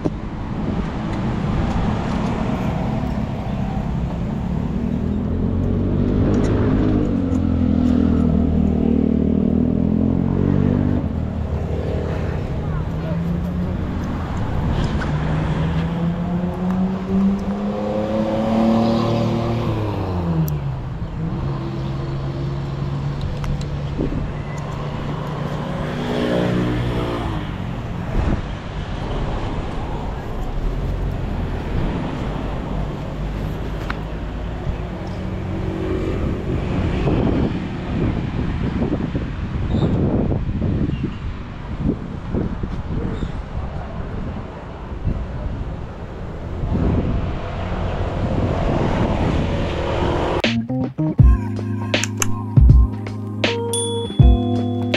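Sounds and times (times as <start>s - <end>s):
motorbike engines revving: 0.0s - 40.8s.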